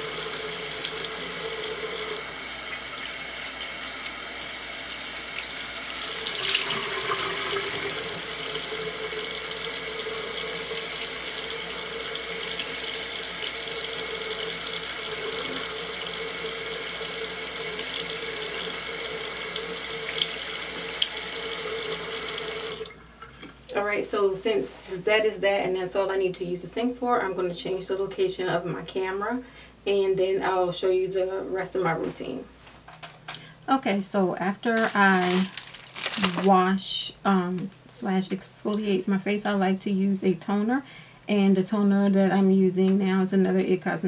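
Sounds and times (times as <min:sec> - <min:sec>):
face rinsing with washcloth: 0:00.0 - 0:23.5
tap water pouring into sink: 0:05.2 - 0:23.6.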